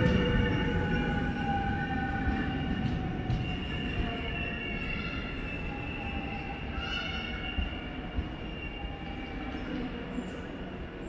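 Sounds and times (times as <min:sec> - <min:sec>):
electric train low rumble: 0:00.0 - 0:11.0.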